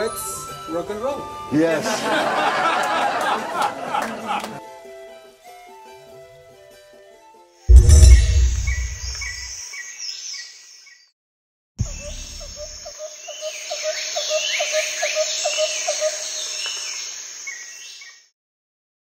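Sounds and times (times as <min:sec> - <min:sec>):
deep low thump: 0:07.7 - 0:09.4.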